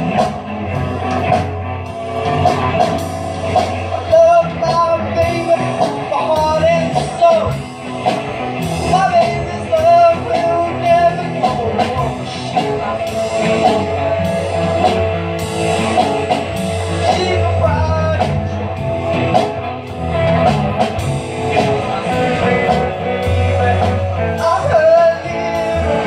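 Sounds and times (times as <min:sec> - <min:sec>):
bass guitar: 0:00.0 - 0:26.0
drum kit: 0:00.0 - 0:26.0
electric guitar lead: 0:00.0 - 0:26.0.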